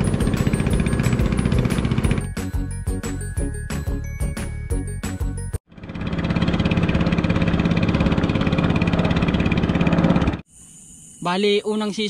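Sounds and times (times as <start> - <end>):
small boat engine running: 0.0 - 2.8, 5.7 - 10.4.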